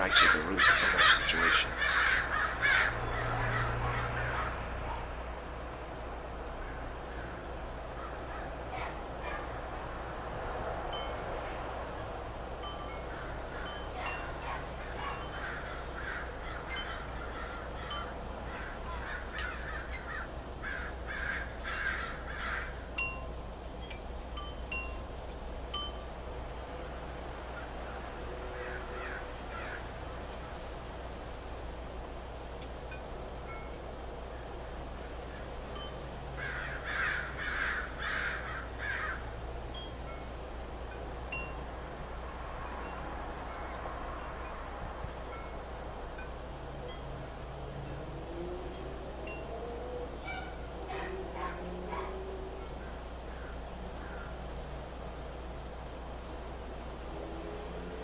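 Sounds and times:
harsh repeated bird calls: 0.0 - 4.7, 13.1 - 22.9, 27.9 - 29.9, 36.4 - 39.3.

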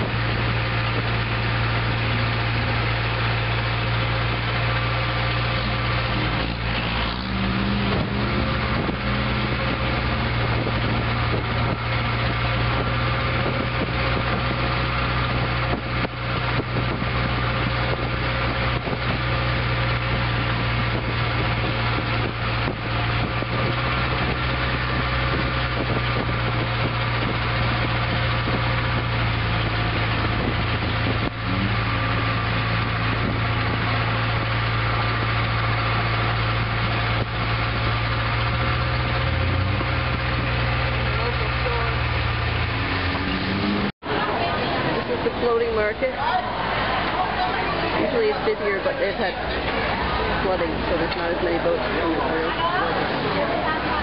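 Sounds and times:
boat engine drone: 0.0 - 54.0.

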